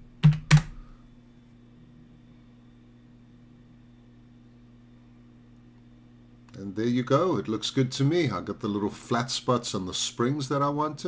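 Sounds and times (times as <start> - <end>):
faint electrical hum: 0.0 - 11.0
computer keyboard keystrokes: 0.2 - 0.8.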